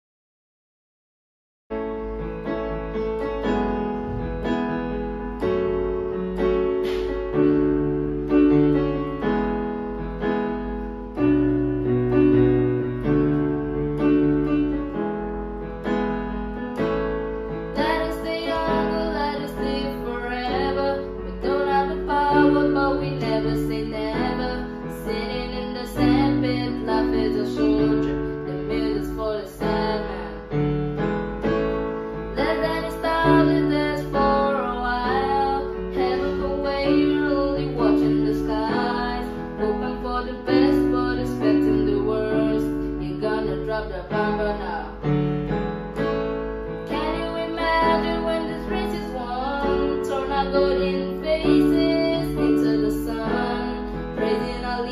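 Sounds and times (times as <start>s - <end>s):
electronic keyboard piano chords: 1.7s - 54.9s.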